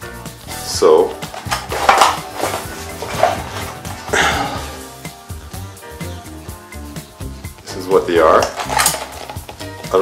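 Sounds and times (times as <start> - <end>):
background music: 0.0 - 10.0
metal parts clinking in plastic pack: 1.2 - 3.8, 8.3 - 9.5.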